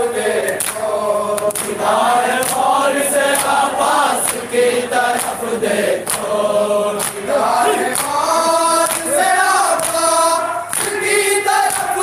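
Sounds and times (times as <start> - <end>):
men chanting a lament in unison: 0.0 - 12.0.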